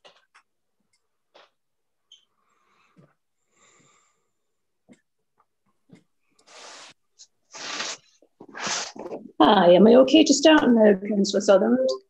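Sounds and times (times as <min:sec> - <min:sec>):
person breathing hard: 0:02.5 - 0:04.4.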